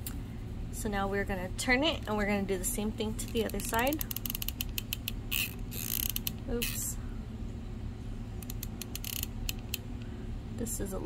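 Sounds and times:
glue gun mechanism clicking: 8.4s - 9.8s.

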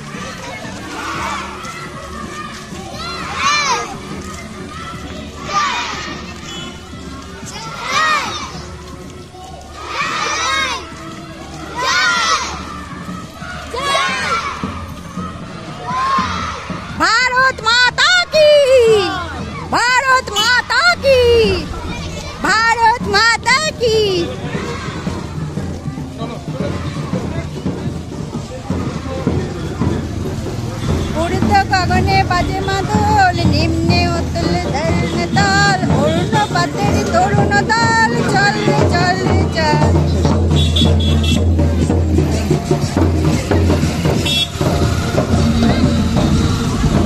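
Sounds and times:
children calling out: 0.0s - 47.0s.

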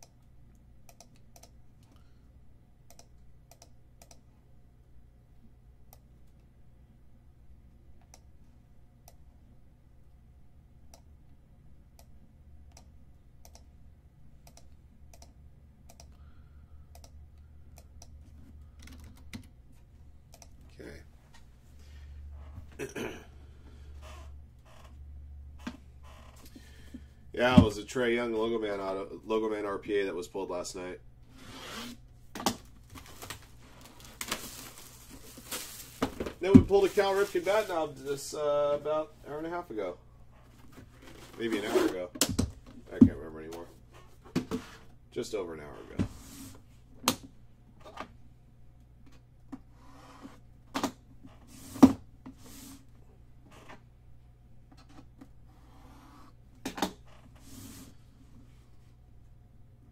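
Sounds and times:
plastic crinkling: 32.9s - 37.7s.

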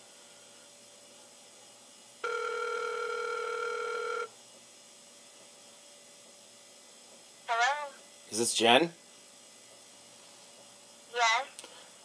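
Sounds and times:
telephone ringback tone: 2.2s - 4.3s.

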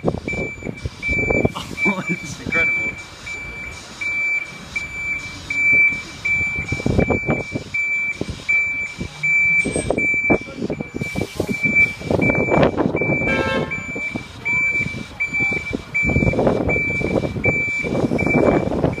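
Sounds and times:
diesel engine rumble: 0.0s - 19.0s
street noise: 0.0s - 19.0s
lorry reversing alarm beeps: 0.3s - 19.0s
horn note: 13.3s - 13.8s.

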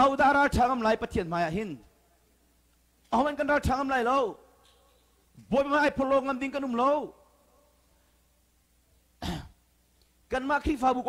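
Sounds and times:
man clearing throat: 9.2s - 9.6s.

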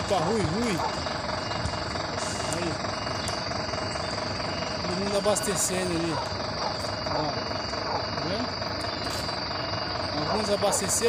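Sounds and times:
diesel truck engine idling: 0.0s - 11.0s
outdoor noise: 0.0s - 11.0s.

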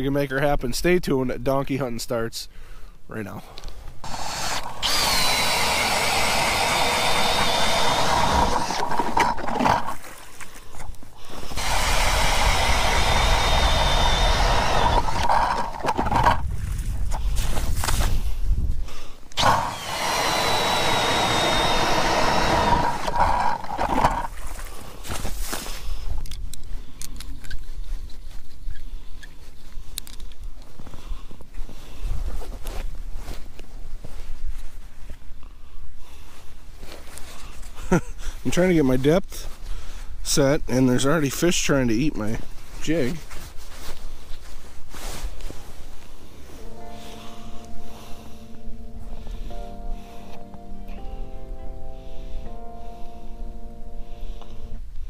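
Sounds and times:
cordless drill motor whine: 4.0s - 10.0s, 11.3s - 16.4s, 19.4s - 24.4s.

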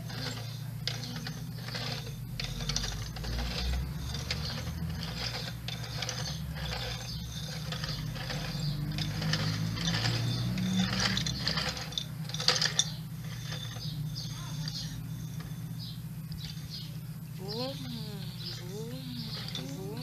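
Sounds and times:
plastic toy clicking and rattling: 0.0s - 16.8s, 17.4s - 20.0s.

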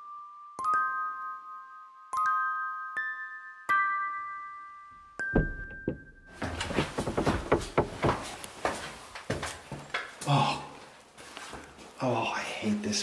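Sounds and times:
knocks: 5.2s - 8.4s
room noise: 5.4s - 12.2s
quick footsteps: 5.8s - 12.0s.

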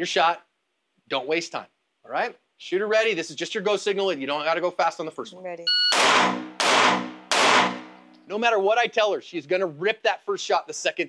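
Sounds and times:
pistol shots echoing indoors: 5.9s - 8.1s.

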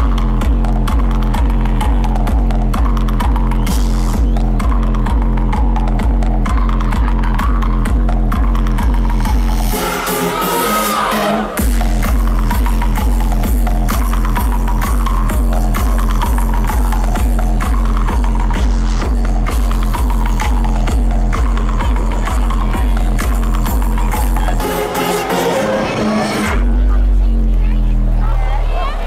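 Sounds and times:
kick drum: 0.0s - 9.5s
electronic dance music: 0.0s - 29.0s.

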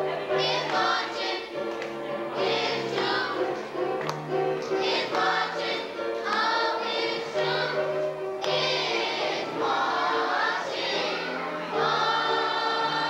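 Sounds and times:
children's choir singing gospel: 0.0s - 13.0s.

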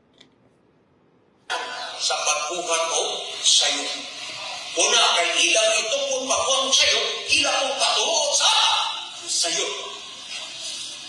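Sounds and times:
video audio from a phone: 1.4s - 11.0s.

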